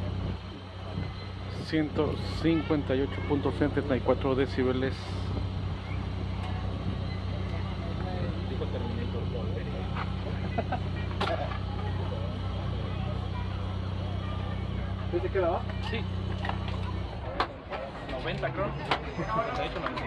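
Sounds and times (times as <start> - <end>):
engine idling: 0.0 - 20.0
faint chatter of people: 0.0 - 20.0.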